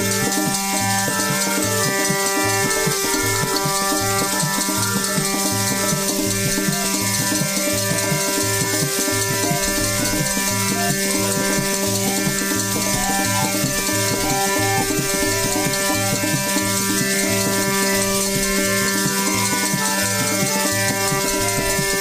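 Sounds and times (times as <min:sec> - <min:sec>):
dholak drum beat: 0:00.0 - 0:22.0
harmonium sustained notes: 0:00.0 - 0:22.0.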